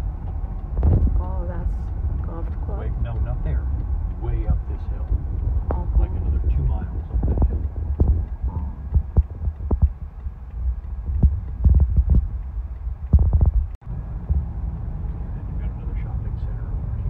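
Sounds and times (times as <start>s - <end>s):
car road and engine rumble: 0.0s - 17.0s.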